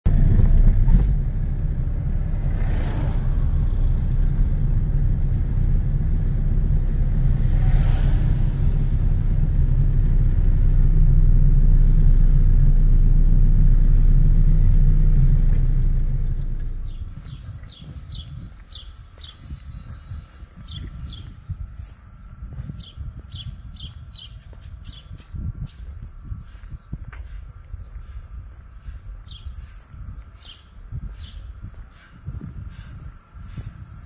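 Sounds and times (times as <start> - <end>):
loud low rumble: 0.0 - 33.3.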